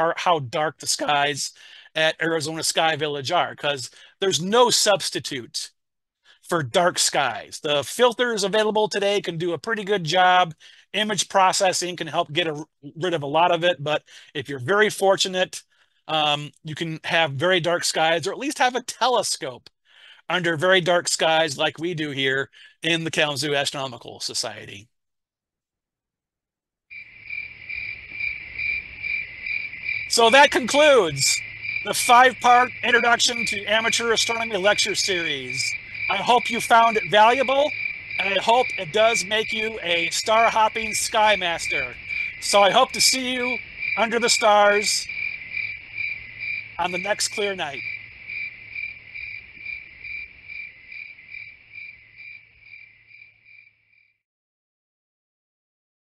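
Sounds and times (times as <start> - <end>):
crickets chirping: 26.9 - 54.2.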